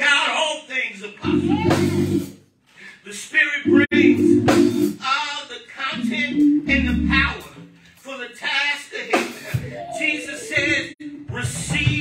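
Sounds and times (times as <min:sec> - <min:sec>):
keyboard chords: 0:01.2 - 0:02.3, 0:03.6 - 0:05.0, 0:05.8 - 0:07.6.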